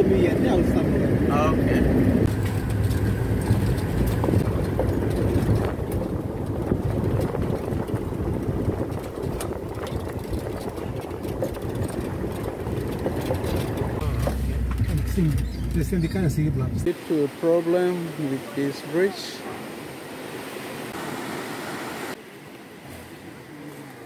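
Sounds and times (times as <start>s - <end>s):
vehicle engine and road rumble: 0.0s - 24.0s.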